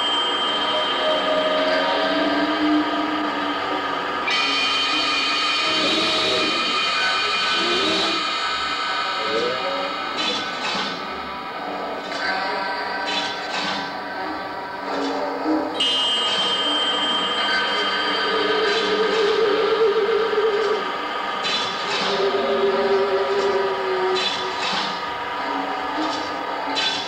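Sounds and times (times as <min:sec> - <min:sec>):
high held tone: 0:00.0 - 0:10.0, 0:15.8 - 0:26.0
sharp percussion hits: 0:00.0 - 0:12.2.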